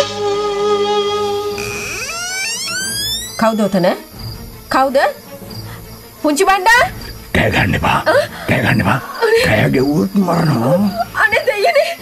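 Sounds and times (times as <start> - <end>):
tone gliding upward in steps: 1.4 - 5.0.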